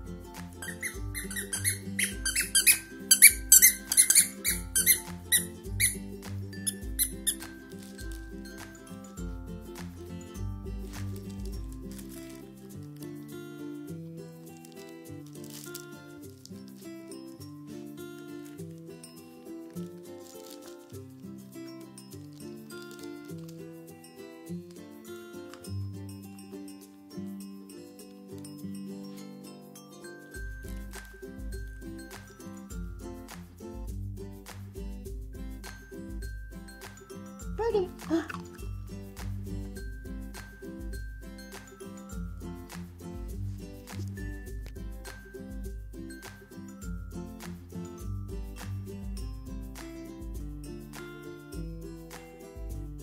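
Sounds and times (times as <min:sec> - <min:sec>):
background music: 0:00.0 - 0:53.0
squeaky toy squeaking: 0:00.6 - 0:07.5, 0:37.6 - 0:38.7.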